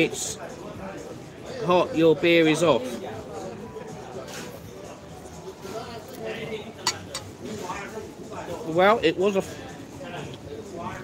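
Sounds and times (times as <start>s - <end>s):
tableware clinking: 6.8s - 7.5s.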